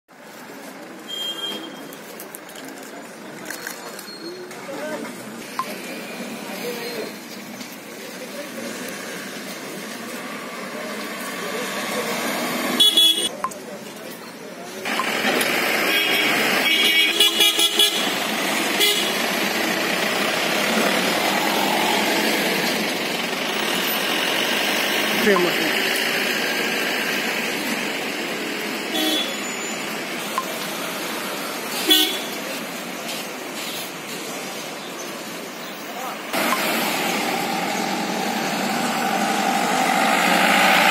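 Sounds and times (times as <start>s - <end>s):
road vehicles: 0.1s - 40.9s
street traffic noise: 0.1s - 40.9s
vehicle horn tooting: 12.8s - 13.3s, 15.9s - 18.2s, 18.8s - 19.2s, 28.9s - 29.7s, 31.8s - 32.3s
thin high tone: 20.7s - 23.3s.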